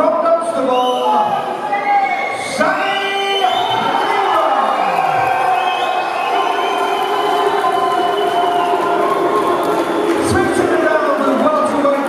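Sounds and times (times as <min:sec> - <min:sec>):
crowd cheering: 0:00.9 - 0:12.0.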